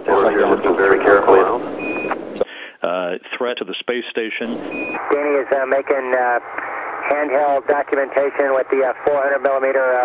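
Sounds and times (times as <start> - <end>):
commentator speaking: 0.0 - 1.7, 2.4 - 10.0
radio-filtered speech: 0.0 - 10.0.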